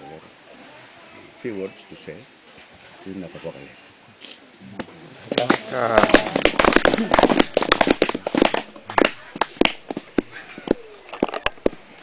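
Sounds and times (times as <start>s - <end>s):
small group clapping: 5.3s - 11.8s
people laughing: 5.4s - 7.6s.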